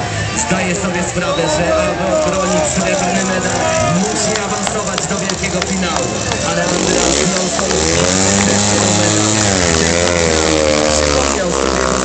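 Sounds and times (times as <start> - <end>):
motorcycle riding past: 2.8 - 12.0.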